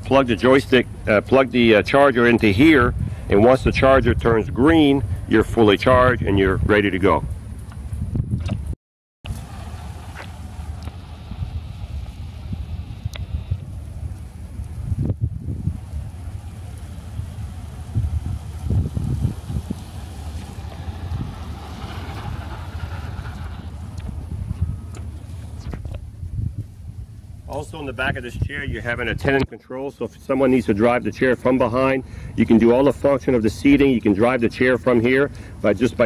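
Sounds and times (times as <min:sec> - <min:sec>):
wind buffeting microphone: 0:00.0 - 0:29.6
tyres rolling on concrete: 0:09.3 - 0:13.0, 0:13.7 - 0:26.2.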